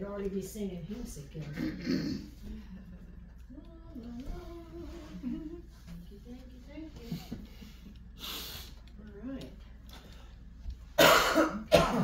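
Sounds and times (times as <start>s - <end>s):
person coughing: 1.6s - 2.4s, 11.0s - 12.0s.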